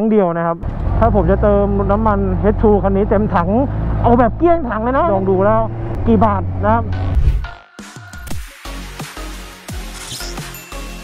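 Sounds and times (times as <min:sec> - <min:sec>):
heavy bass hits dropping in pitch: 0:00.6 - 0:07.6
low rumble: 0:00.6 - 0:07.6
whoosh: 0:03.7 - 0:07.6
dubstep intro music: 0:07.0 - 0:11.0.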